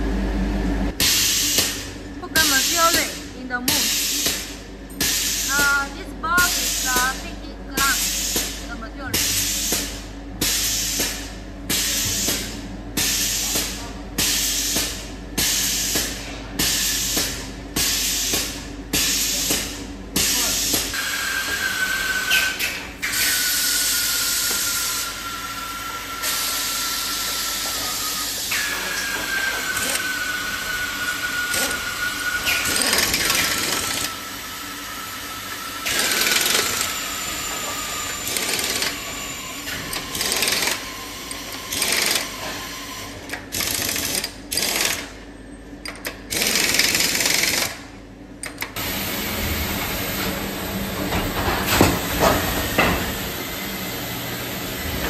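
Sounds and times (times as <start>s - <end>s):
compressed air hissing bursts: 7.8s - 8.6s.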